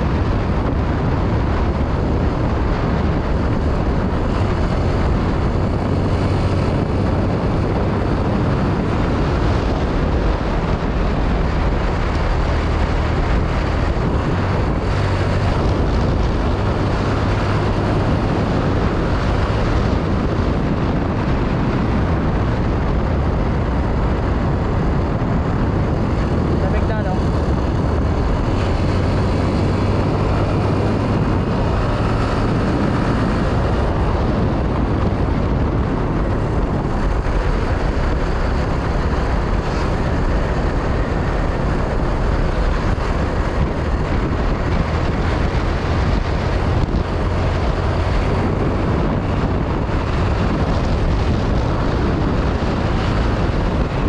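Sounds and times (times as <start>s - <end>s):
motorcycle engine cruising: 0.0s - 54.0s
wind rushing on microphone: 0.0s - 54.0s.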